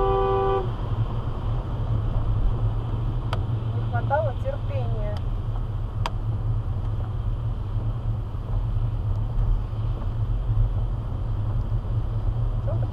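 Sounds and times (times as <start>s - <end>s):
car driving on wet street: 0.0s - 12.9s.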